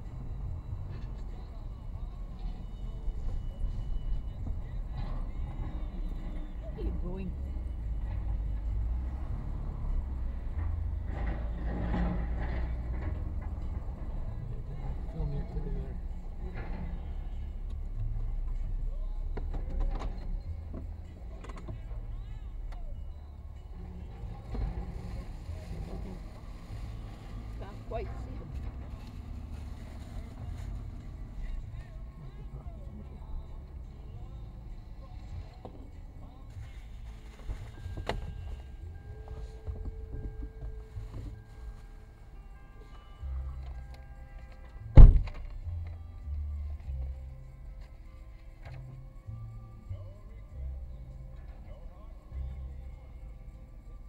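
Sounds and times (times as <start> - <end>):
car engine and tyres rumbling: 0.0 - 54.0.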